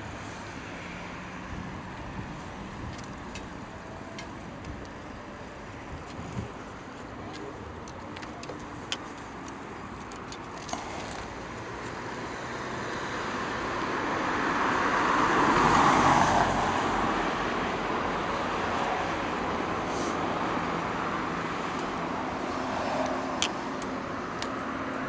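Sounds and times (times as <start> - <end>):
car passing by: 10.7 - 23.8.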